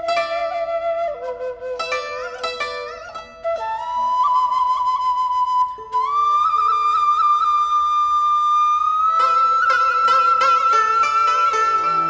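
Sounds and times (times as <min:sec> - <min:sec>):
flute playing long notes: 0:00.0 - 0:02.4, 0:03.3 - 0:12.0.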